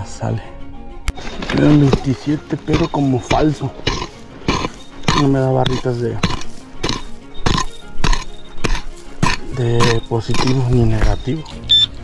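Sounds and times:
pick chopping into hard dirt: 0:01.6 - 0:11.2.

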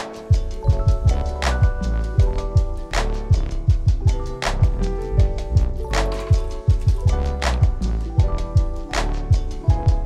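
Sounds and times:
held chords: 0:00.0 - 0:10.0
hi-hat ticks: 0:00.0 - 0:10.0
bass drum thumps: 0:00.4 - 0:10.0.

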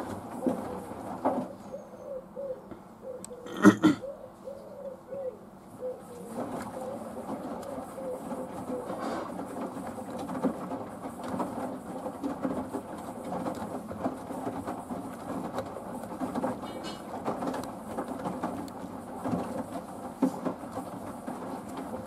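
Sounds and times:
washing machine drum tumbling: 0:06.3 - 0:22.0.

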